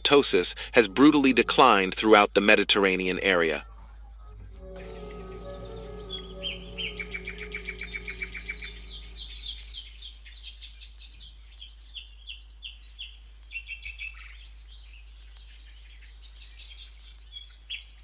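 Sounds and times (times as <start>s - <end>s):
songbirds chirping: 3.1s - 9.6s
soft background music: 3.9s - 9.6s.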